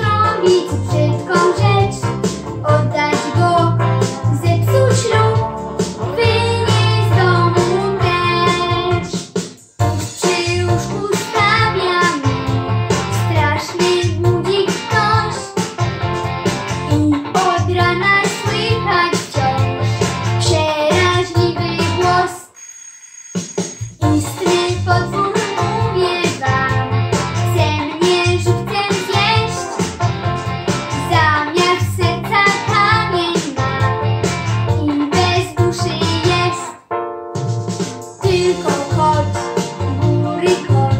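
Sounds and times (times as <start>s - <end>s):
boy singing: 0.0s - 2.0s, 2.6s - 5.5s, 6.1s - 9.2s, 10.2s - 12.6s, 13.2s - 15.5s, 16.9s - 19.7s, 20.4s - 22.5s, 24.0s - 26.9s, 27.5s - 29.8s, 31.0s - 33.9s, 34.8s - 36.8s, 38.2s - 40.9s
backing track music: 0.0s - 22.4s, 23.4s - 40.9s.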